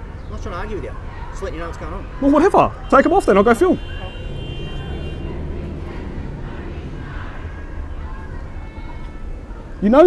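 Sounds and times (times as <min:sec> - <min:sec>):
distant voices: 0:00.0 - 0:10.0
low rumble of traffic: 0:00.0 - 0:10.0.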